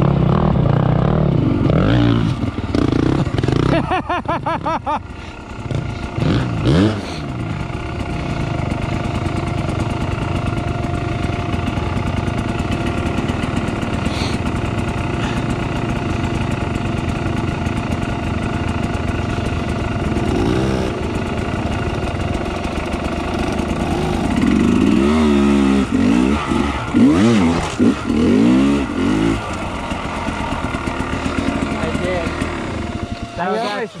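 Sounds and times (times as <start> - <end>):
dirt bike engine revving: 0.0 - 34.0.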